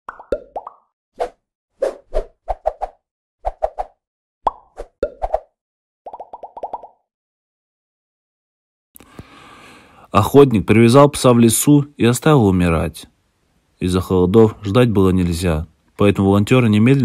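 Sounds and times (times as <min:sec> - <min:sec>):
cartoon pops and plops: 0:00.1 - 0:00.9, 0:04.4 - 0:05.4, 0:06.1 - 0:07.0.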